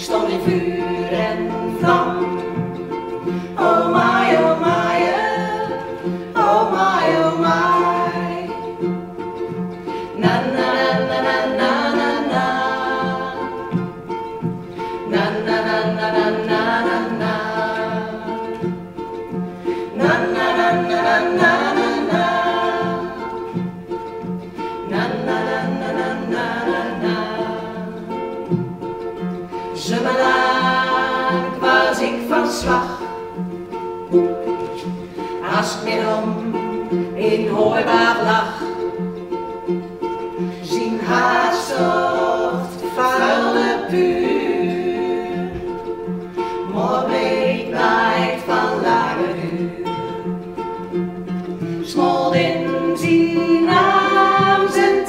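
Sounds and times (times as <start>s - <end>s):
ukulele strumming: 0.0s - 55.0s
women singing together: 0.0s - 55.0s.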